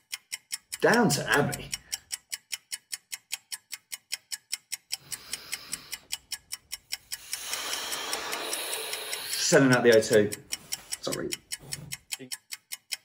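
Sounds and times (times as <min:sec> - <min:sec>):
clock ticking: 0:00.0 - 0:13.0.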